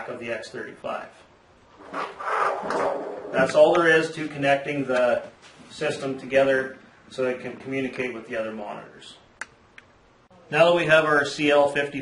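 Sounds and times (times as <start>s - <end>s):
cables rubbing on tabletop: 1.7s - 3.6s.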